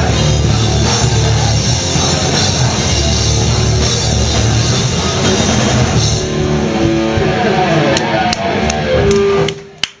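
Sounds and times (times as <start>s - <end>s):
electric guitar notes ringing: 0.0s - 9.8s
punk band playing live: 0.0s - 9.9s.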